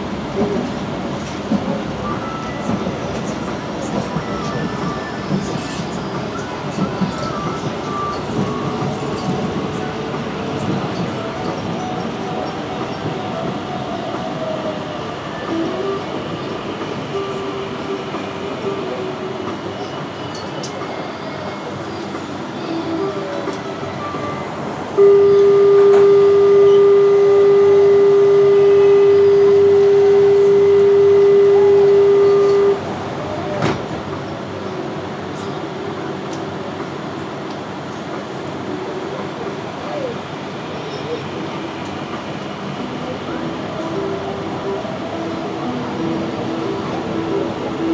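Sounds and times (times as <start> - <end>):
train running and braking: 0.0 - 47.9
loud steady buzzer tone: 25.0 - 32.8.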